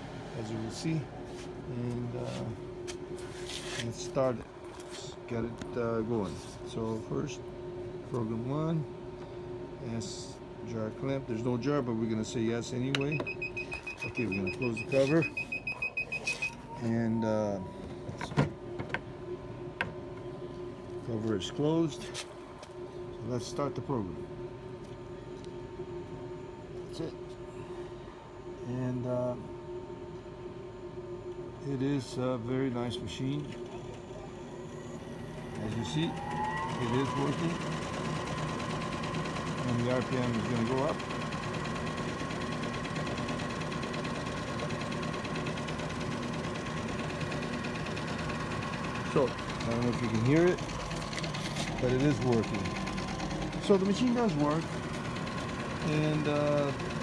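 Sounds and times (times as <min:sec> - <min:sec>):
faint steady hum: 0:00.0 - 0:38.3
ball mill whirring: 0:31.6 - 0:57.0.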